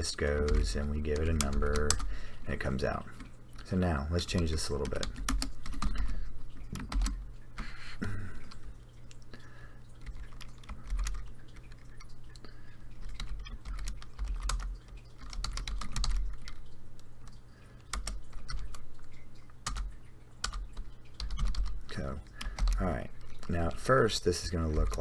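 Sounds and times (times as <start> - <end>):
steady low hum: 0.0 - 25.0
computer keyboard typing: 0.2 - 2.1, 4.3 - 7.2, 9.9 - 23.9, 24.6 - 25.0.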